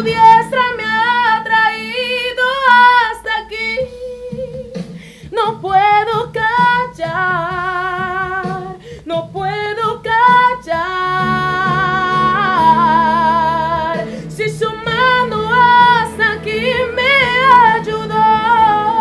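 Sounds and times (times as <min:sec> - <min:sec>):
woman singing worship song: 0:00.0 - 0:19.0.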